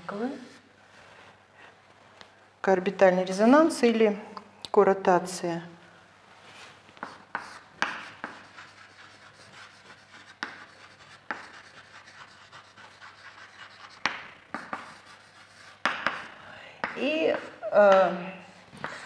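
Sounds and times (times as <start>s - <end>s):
chalk scratching on blackboard: 7.0s - 19.0s
chalk tapping on board: 7.0s - 19.0s.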